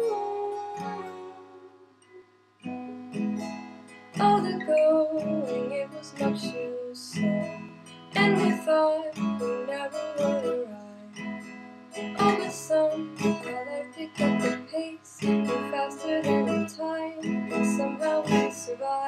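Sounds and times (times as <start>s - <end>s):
person singing softly: 0.0s - 2.2s, 4.2s - 11.2s, 12.0s - 19.0s
acoustic guitar strumming: 0.0s - 19.0s.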